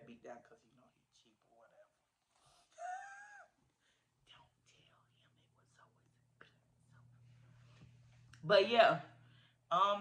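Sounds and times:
faint whispering: 4.2s - 7.6s.

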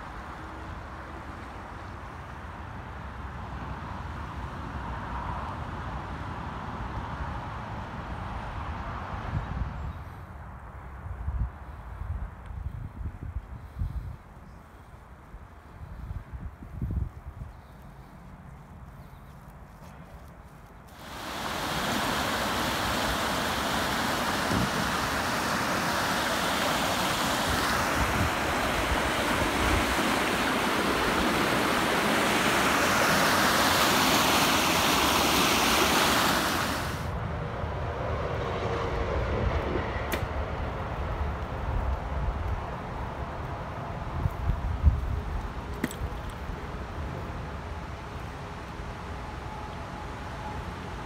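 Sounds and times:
river water rushing: 21.0s - 37.1s.

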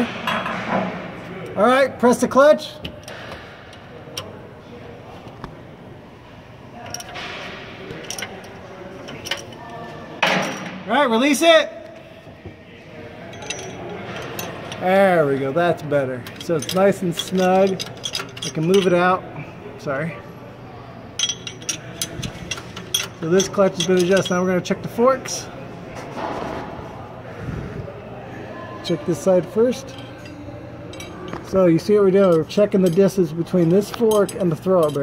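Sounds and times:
metal tool clinking on metal: 13.3s - 14.9s, 16.2s - 19.0s, 21.2s - 24.6s.

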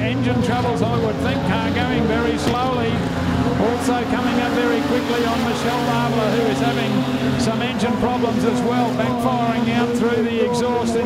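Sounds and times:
car engines running: 0.0s - 11.0s
race commentator talking: 0.0s - 11.0s.

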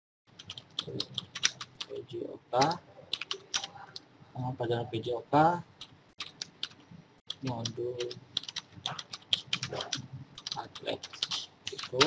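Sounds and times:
computer keyboard typing: 0.3s - 2.0s, 2.6s - 4.1s, 5.8s - 12.0s.

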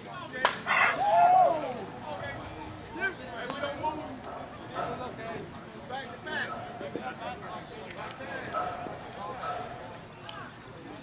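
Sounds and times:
distant voices calling out: 0.4s - 11.0s.

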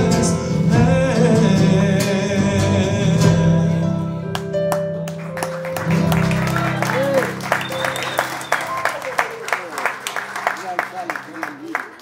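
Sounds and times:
man singing into microphone: 0.0s - 4.2s.

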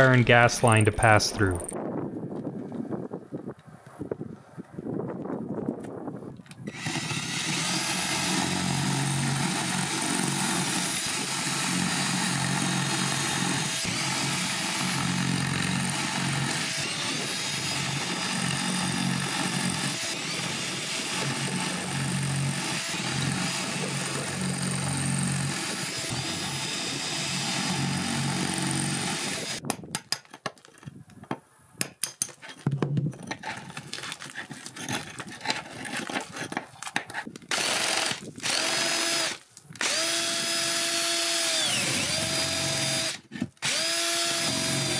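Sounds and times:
cordless drill grinding into stucco: 6.6s - 29.6s, 33.8s - 44.9s.

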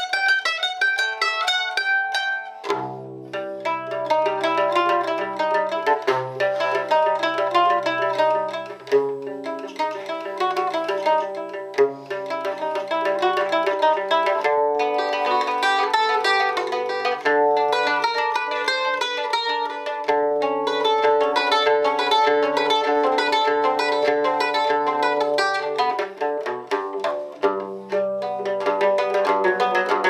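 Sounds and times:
plucked lute arpeggios: 0.0s - 30.0s.

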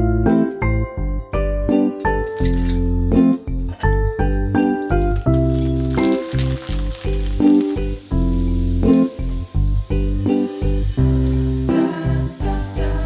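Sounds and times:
background music with bass: 0.0s - 13.0s
food sizzling in hot oil: 4.0s - 13.0s.

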